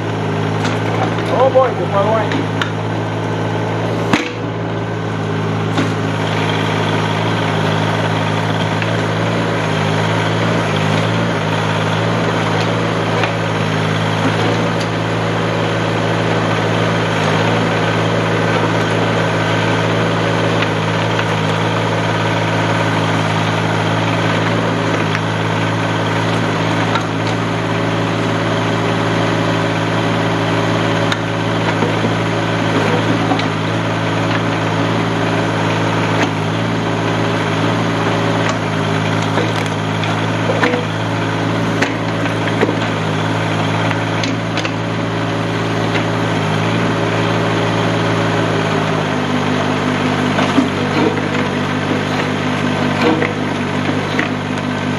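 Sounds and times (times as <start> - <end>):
hydraulic backhoe digging dirt: 0.0 - 54.9
tractor engine running: 0.0 - 54.9.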